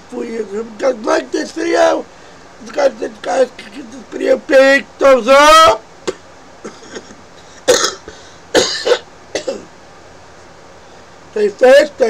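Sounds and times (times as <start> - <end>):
man coughing: 6.0 - 9.7.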